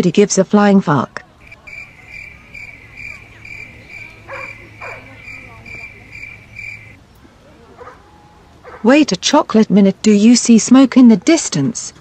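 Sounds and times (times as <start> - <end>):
cricket chirping: 1.4 - 7.0.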